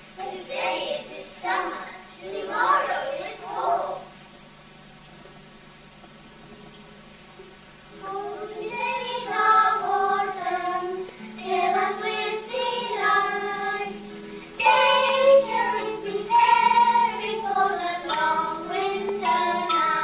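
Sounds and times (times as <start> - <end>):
steady low hum: 0.0 - 20.0
children singing together: 0.2 - 4.1, 7.9 - 20.0.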